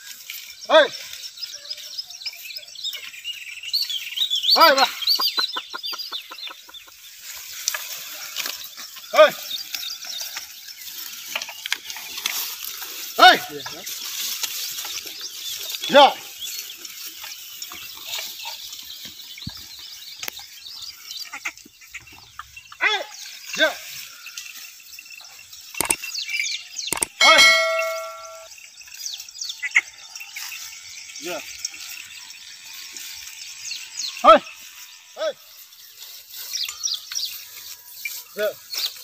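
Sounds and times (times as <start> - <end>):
tall grass rustling and crackling: 0.0 - 39.0
faint bird chirps: 18.1 - 31.8
sharp ticks: 25.7 - 28.5
sharp metallic clang: 27.0 - 28.5
person shouting: 27.2 - 27.5.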